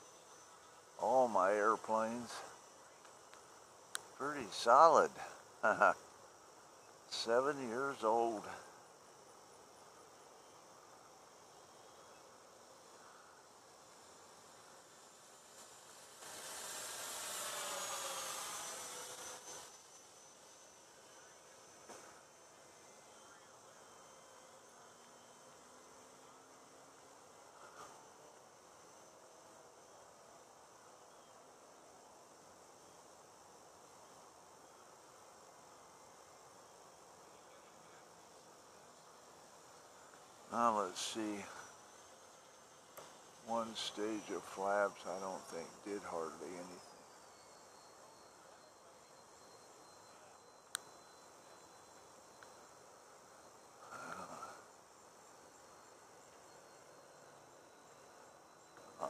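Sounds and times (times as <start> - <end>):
faint high hiss: 0.0 - 59.0
model plane propeller whine: 0.0 - 59.0.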